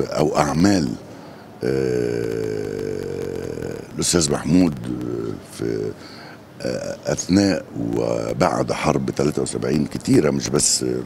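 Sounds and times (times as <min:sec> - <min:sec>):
man's drawn-out hesitation sound: 0:00.0 - 0:11.0.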